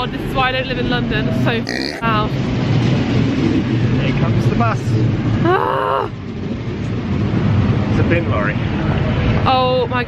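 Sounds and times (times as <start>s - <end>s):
loud street traffic: 0.0s - 10.0s.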